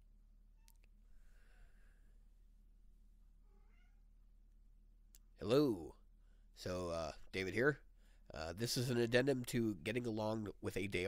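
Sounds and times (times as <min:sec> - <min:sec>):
low electrical hum: 0:00.0 - 0:11.0
faint pitched call: 0:03.4 - 0:04.1.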